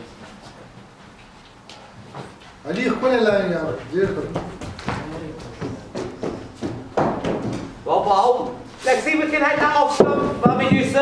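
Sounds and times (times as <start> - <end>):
footfalls on artificial turf: 3.5 - 11.0.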